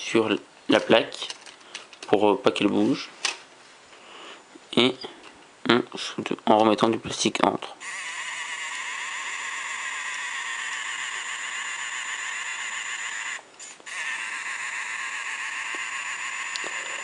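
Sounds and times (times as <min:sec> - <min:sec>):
small motor whirring: 0:07.8 - 0:17.0.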